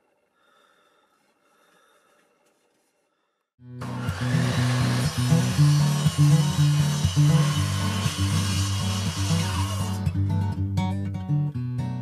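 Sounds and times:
strummed guitar music: 3.6 - 12.0.

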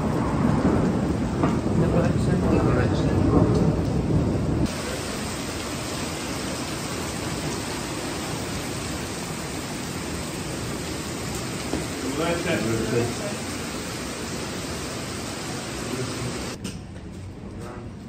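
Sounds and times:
rain falling: 0.0 - 16.6.

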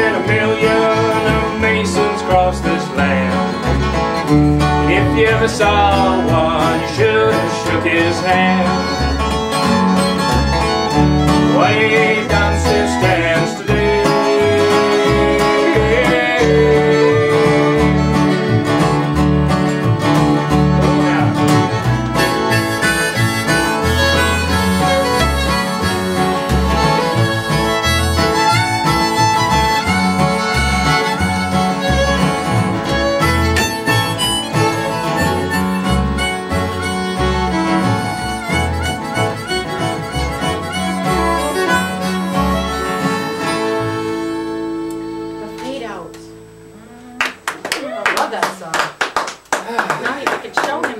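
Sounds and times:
fiddle bowing: 0.0 - 5.0, 5.7 - 47.6
acoustic guitar strumming: 0.0 - 49.5.

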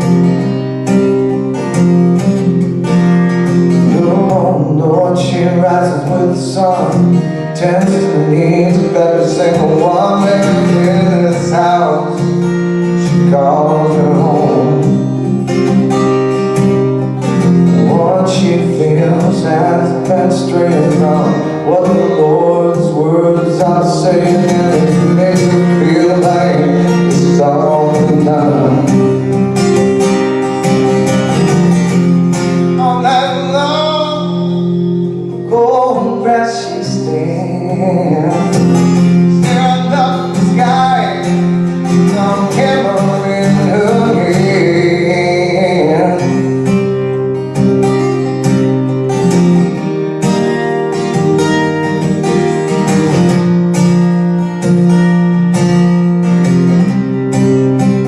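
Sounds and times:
acoustic guitar strummed: 0.0 - 58.0
man singing: 3.6 - 15.7, 17.2 - 29.4, 31.8 - 47.2.

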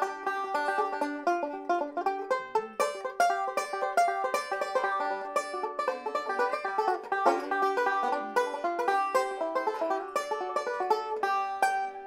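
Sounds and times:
banjo picked fast: 0.0 - 12.0.

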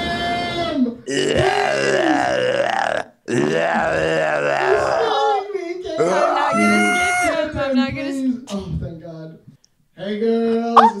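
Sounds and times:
person groaning gutturally: 1.1 - 7.3.

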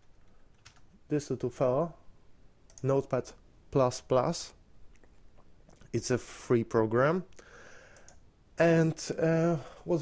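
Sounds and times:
man speaking: 1.1 - 2.0, 2.8 - 4.6, 5.9 - 7.3, 8.6 - 10.0
faint clicks: 7.3 - 8.3.

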